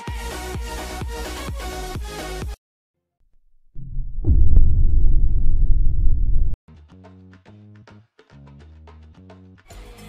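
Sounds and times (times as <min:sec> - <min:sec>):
deep low rumble: 0:03.3 - 0:06.6.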